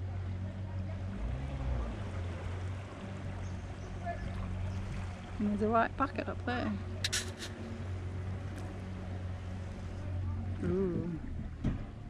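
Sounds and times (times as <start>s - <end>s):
boat motor humming: 0.0s - 12.0s.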